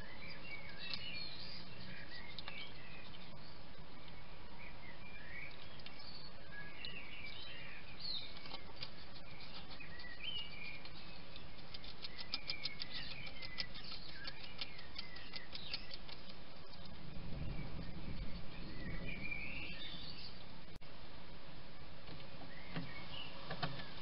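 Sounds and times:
bird singing warbling song: 0.0s - 20.8s, 21.8s - 24.0s.

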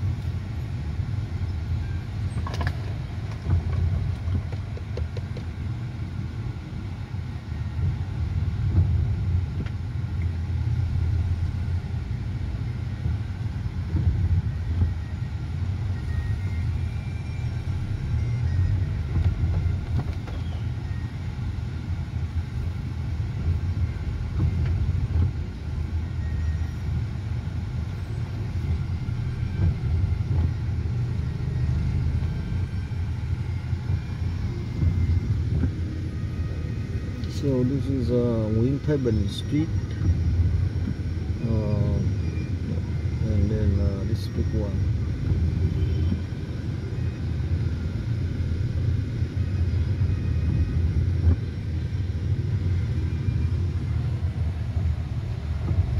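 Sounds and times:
car engine and tyres rumbling: 0.0s - 55.9s.

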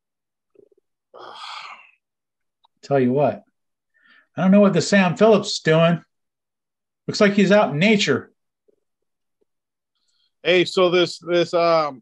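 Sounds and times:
person exhaling: 1.2s - 2.0s.

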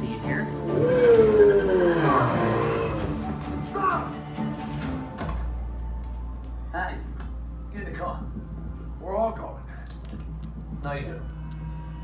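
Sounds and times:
action movie soundtrack: 0.0s - 12.0s
vehicle tone gliding down: 0.6s - 3.1s.

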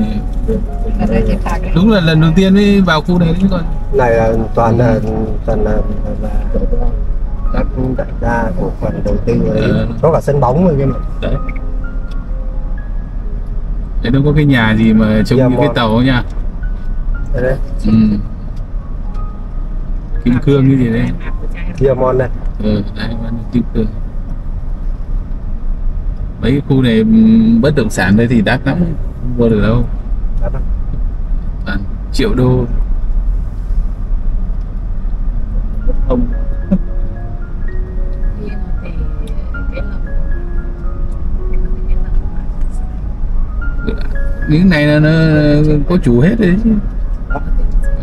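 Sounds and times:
background music of held notes: 0.0s - 24.1s, 35.6s - 48.0s
car engine and road rumble: 0.0s - 48.0s.

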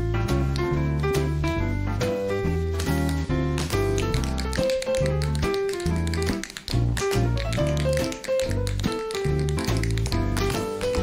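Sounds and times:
tap shoes clicking on stage: 2.8s - 11.0s.

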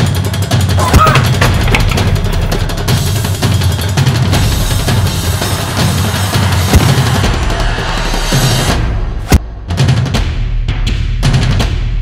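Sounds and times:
soundtrack music with drum beat: 0.0s - 12.0s.

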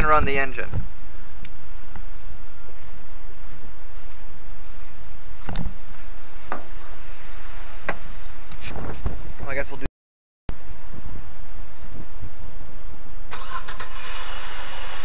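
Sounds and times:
wind rumble on microphone: 0.0s - 9.8s.

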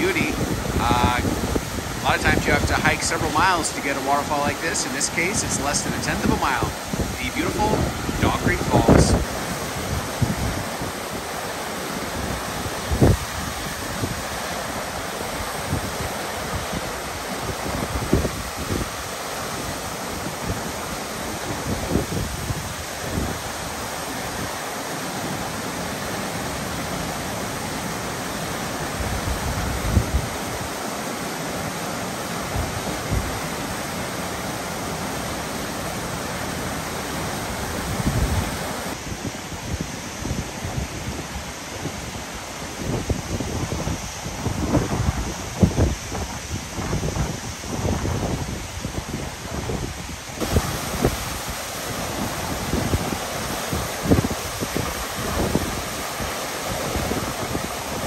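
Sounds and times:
wind buffeting microphone: 0.0s - 3.6s, 5.5s - 11.4s, 12.0s - 20.7s, 29.0s - 30.7s, 37.4s - 58.0s
waterfall rushing: 0.0s - 58.0s.

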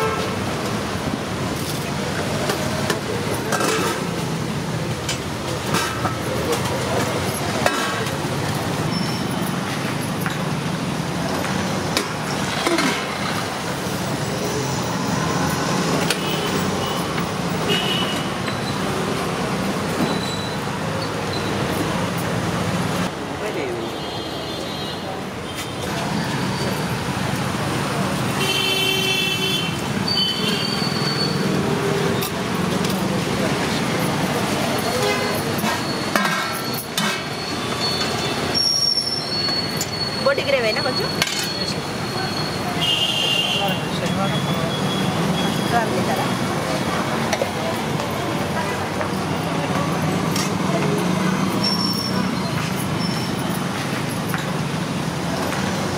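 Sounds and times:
vehicle horns honking: 0.0s - 0.4s, 17.6s - 18.4s, 28.4s - 31.4s, 34.9s - 36.0s, 42.2s - 45.8s
traffic passing: 0.0s - 55.9s
steel pots and ladles clinking: 1.6s - 9.6s, 11.8s - 13.4s, 34.0s - 40.2s, 41.0s - 41.8s
murmur of voices: 38.6s - 55.9s.

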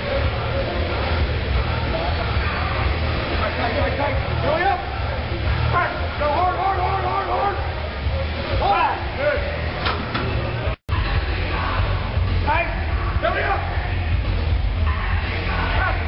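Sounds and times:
indistinct voices talking: 0.0s - 16.0s
steady low rumble: 10.4s - 16.0s.

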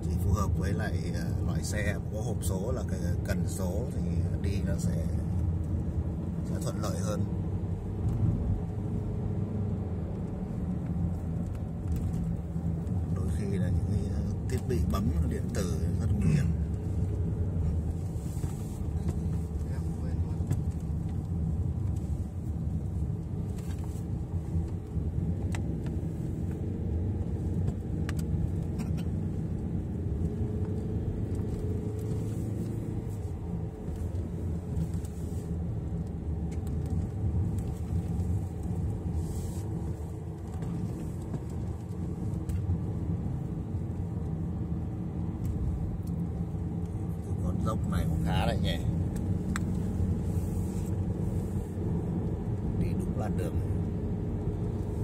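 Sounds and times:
car road and engine rumble: 0.0s - 55.0s.

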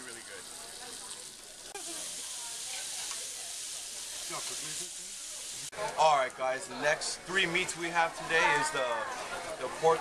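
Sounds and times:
meat sizzling on a grill: 0.0s - 10.0s.

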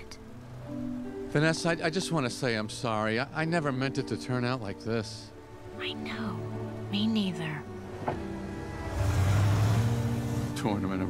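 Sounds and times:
soft background music: 0.0s - 11.0s
car engine hum and road noise: 7.2s - 11.0s.

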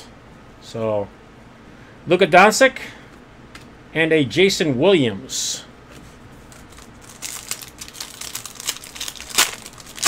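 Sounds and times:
foil wrapper crinkling and tearing: 6.5s - 10.0s.

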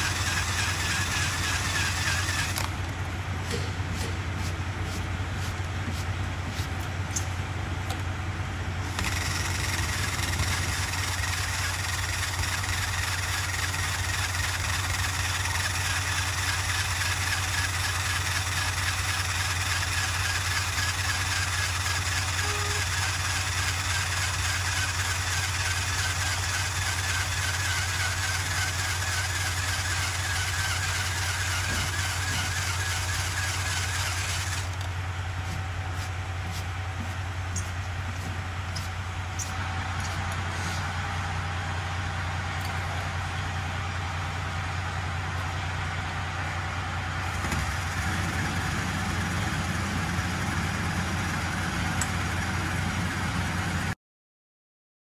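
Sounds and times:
power tool eraser wheel grinding: 0.0s - 2.9s, 8.9s - 40.9s
steady low hum: 30.4s - 47.2s.

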